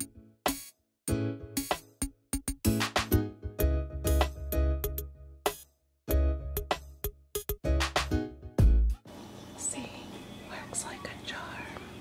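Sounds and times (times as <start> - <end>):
low background hum: 9.1 - 12.0
person whispering: 9.6 - 12.0.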